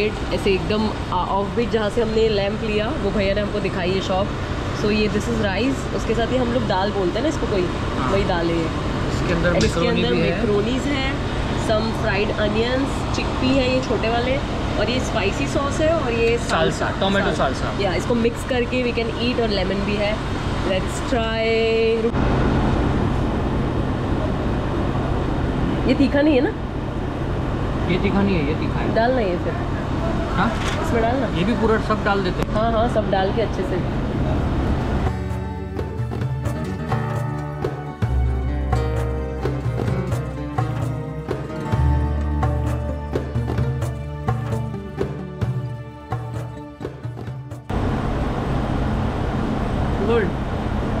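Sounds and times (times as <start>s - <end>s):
low traffic rumble: 0.0s - 51.0s
person speaking nearby: 9.6s - 10.4s.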